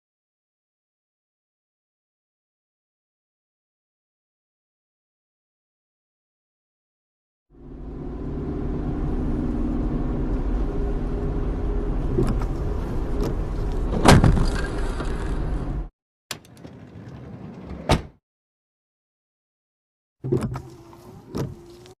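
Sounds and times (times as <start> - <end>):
car engine hum: 7.5 - 15.9, 20.2 - 22.0
tyre noise on wet road: 9.1 - 15.9.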